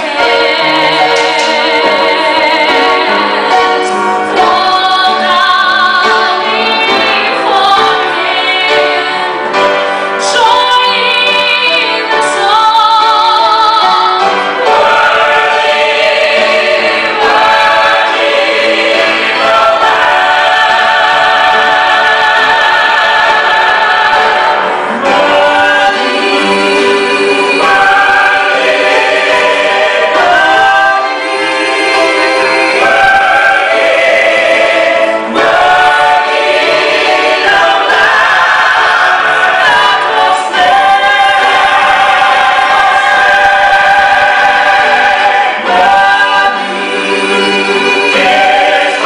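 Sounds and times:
gospel choir singing: 0:00.0 - 0:49.0.

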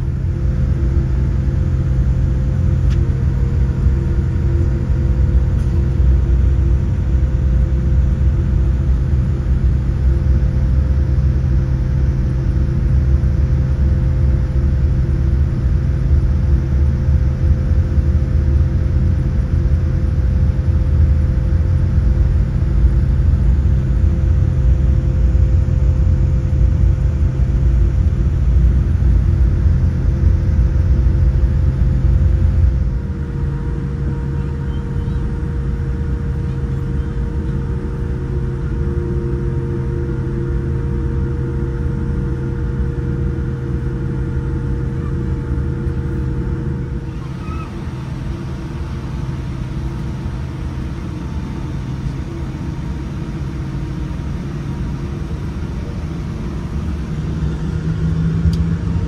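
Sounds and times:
airliner cabin rumble and hum: 0:00.0 - 0:59.0.

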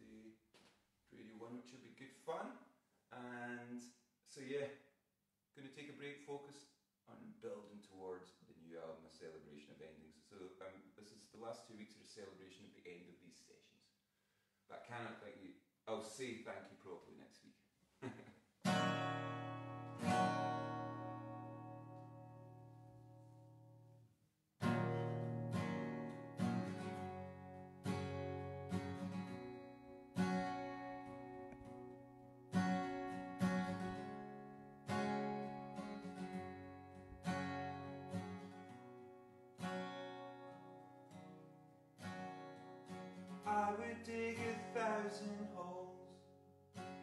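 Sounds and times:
acoustic guitar strumming: 0:18.6 - 0:23.9, 0:24.6 - 0:47.0.

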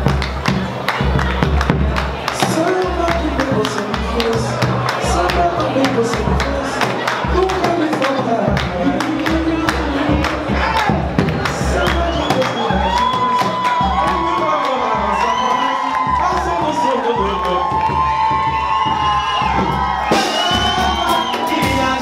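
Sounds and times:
crowd cheering and singing along: 0:00.0 - 0:22.0
deep drum beats: 0:00.0 - 0:22.0.

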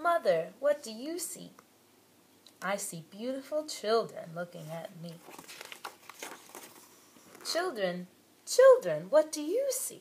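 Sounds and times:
book page turning: 0:04.6 - 0:07.5.

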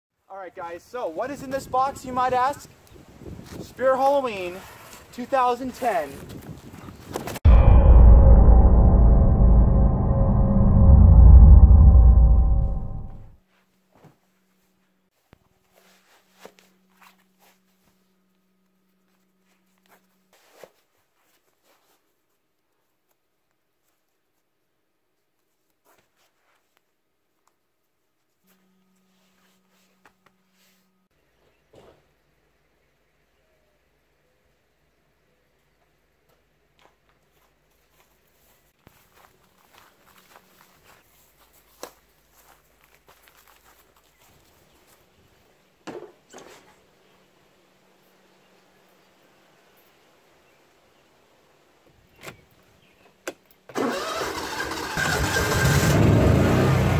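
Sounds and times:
loud thump: 0:07.5 - 0:13.3
footsteps on grass: 0:37.2 - 0:45.2.

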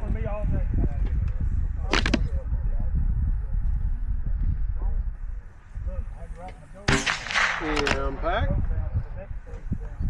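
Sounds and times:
voices: 0:00.0 - 0:10.0.

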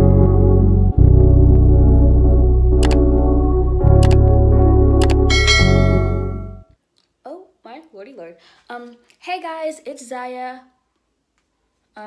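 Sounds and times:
intro music with deep bass: 0:00.0 - 0:06.6
bright bell-like ding: 0:05.3 - 0:06.6.

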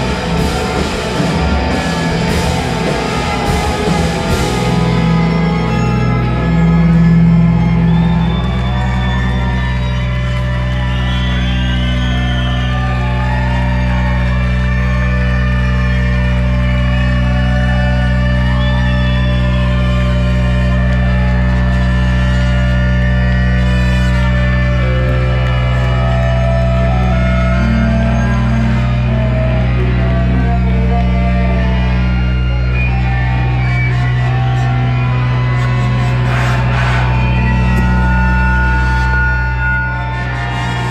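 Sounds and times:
saxophones and trumpet holding notes: 0:00.0 - 0:40.9.

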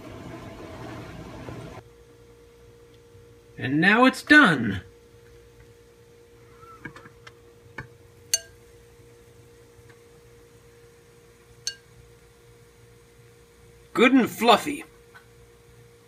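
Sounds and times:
faint electrical hum: 0:00.0 - 0:16.0
glass lid ringing clink: 0:08.3 - 0:08.6, 0:11.7 - 0:11.9.

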